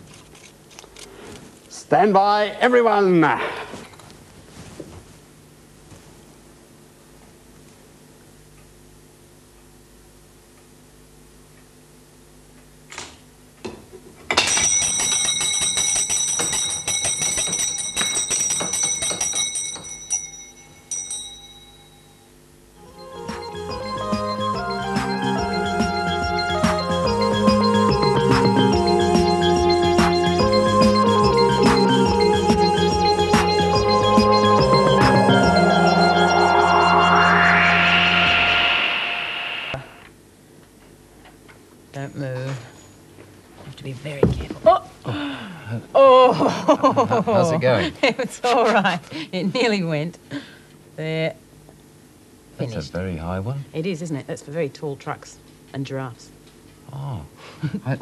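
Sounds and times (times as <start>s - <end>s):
bell ringing rapidly: 14.5s - 22.1s
synthesizer held notes: 32.5s - 40.1s
rising whooshing sweep: 35.2s - 40.0s.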